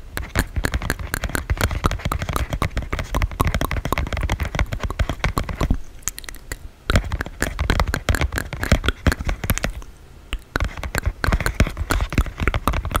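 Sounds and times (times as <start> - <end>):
tongue clicks and lip smacks: 0.2 - 13.0.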